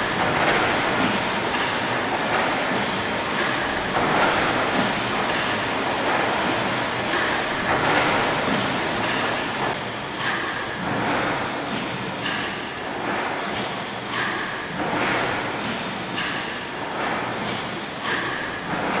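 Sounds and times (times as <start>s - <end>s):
steam engine clatter and hiss: 0.0s - 19.0s.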